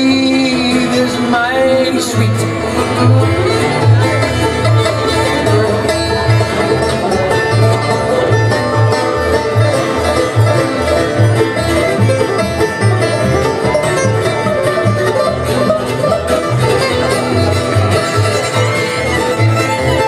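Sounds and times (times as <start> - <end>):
bluegrass band playing: 0.0 - 20.0.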